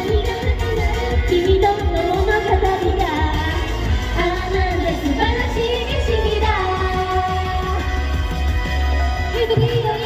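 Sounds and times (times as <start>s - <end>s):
backing track with bass beat: 0.0s - 10.0s
women singing into microphones: 0.0s - 10.0s.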